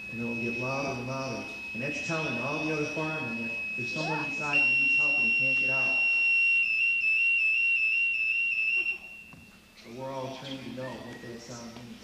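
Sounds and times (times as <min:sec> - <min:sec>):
high-pitched alarm tone: 0:00.0 - 0:09.7.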